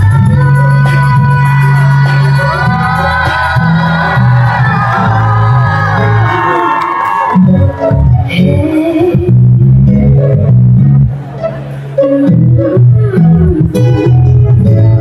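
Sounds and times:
crowd noise: 0.0s - 15.0s.

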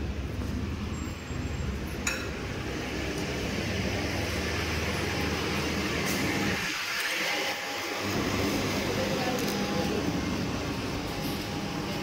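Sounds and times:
low machine hum: 0.0s - 6.9s, 7.5s - 12.0s
restaurant background noise: 0.0s - 12.0s.

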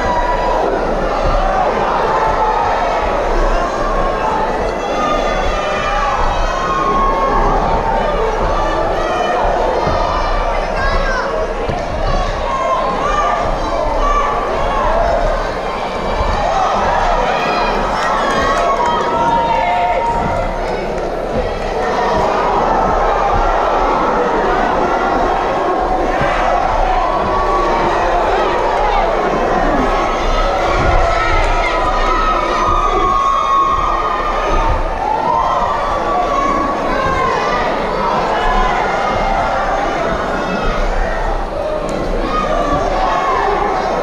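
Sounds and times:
crowd shouting and cheering: 0.0s - 44.0s.

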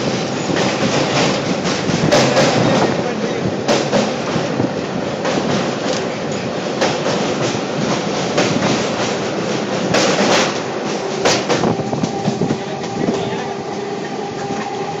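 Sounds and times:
train wheel and rail noise: 0.0s - 15.0s.

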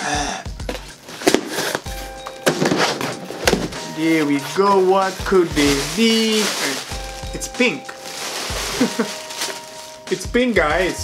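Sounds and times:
cardboard flaps knocking: 2.4s - 3.8s.

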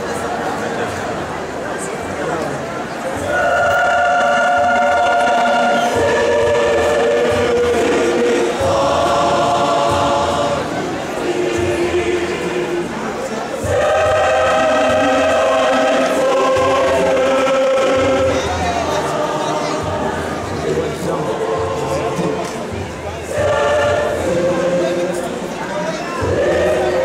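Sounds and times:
large choir singing: 0.0s - 1.2s, 3.0s - 27.0s.

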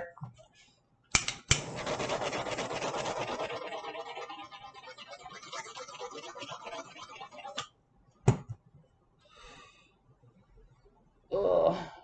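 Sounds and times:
scratchy rubbing and rustling: 1.7s - 4.4s.

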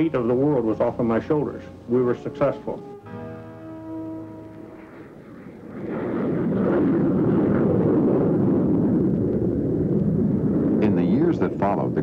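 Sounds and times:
aircraft engine roar: 3.7s - 12.0s.

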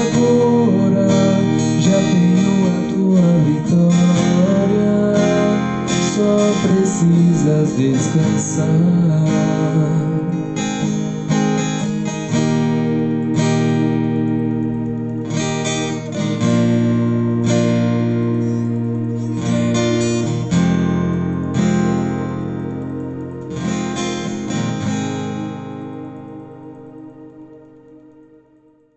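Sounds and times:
acoustic guitar strumming chords: 0.0s - 28.5s.

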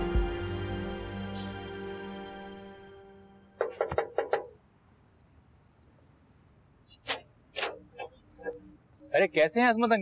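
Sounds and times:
crickets chirping: 1.4s - 6.1s, 6.8s - 10.0s
knocking on a metal gate: 3.6s - 4.6s.

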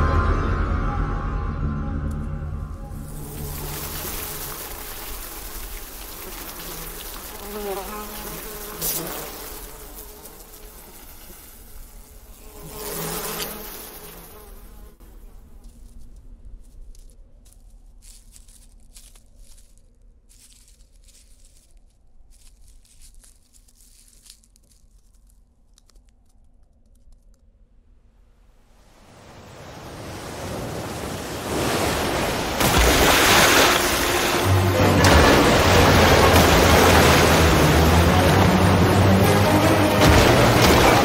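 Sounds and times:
low hum: 0.0s - 6.5s
swarm of insects buzzing: 3.0s - 15.2s, 32.5s - 41.0s
rushing flood water: 3.1s - 8.7s, 28.9s - 41.0s.

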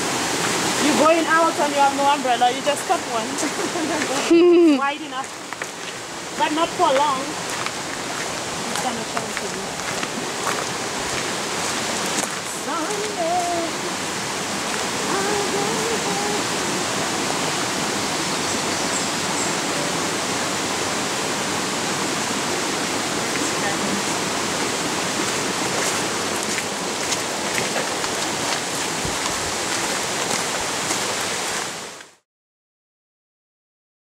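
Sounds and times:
running water rushing: 0.0s - 32.2s.

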